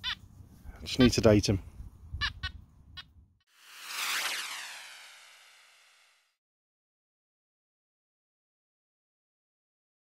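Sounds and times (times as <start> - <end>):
low wind noise: 0.2 - 4.0
transition whoosh: 3.6 - 6.3.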